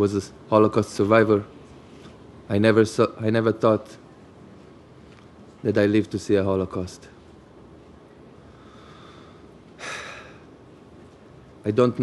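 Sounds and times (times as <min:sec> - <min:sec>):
man's sharp breath: 0:08.6 - 0:10.5.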